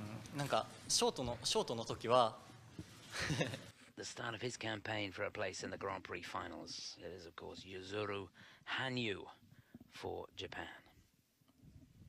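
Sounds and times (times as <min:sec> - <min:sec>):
man speaking: 0:00.0 - 0:02.5, 0:04.0 - 0:11.0.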